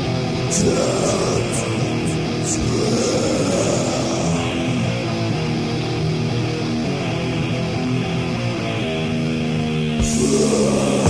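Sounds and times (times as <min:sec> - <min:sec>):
distorted electric guitar riff: 0:00.0 - 0:11.0
metal band playing: 0:00.0 - 0:11.0.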